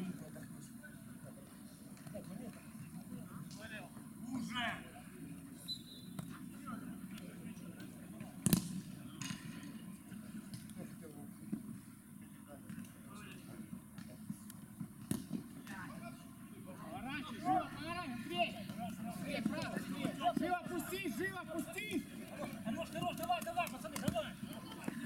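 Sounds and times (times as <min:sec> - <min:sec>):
players calling: 0:15.6 - 0:25.0.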